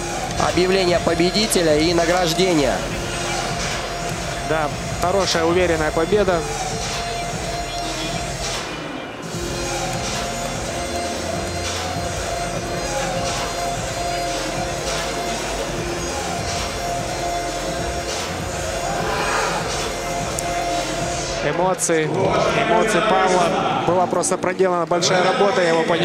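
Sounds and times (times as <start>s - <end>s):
music with sustained notes and beat: 0.0s - 26.0s.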